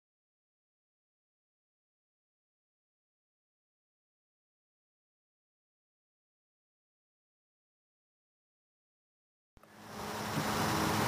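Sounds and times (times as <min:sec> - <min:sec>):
outdoor background noise with hum: 0:09.6 - 0:11.0.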